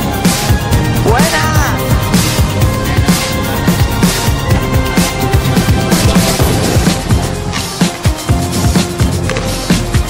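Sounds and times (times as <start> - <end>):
electronic music with fast drum beat: 0.0 - 10.0.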